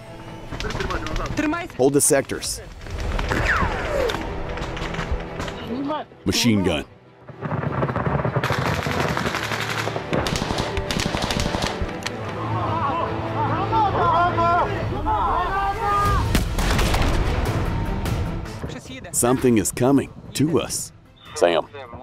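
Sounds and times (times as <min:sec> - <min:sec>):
rifle shots: 0:07.3 - 0:12.0
machine-gun bursts: 0:07.5 - 0:11.9
men shouting: 0:12.3 - 0:16.3.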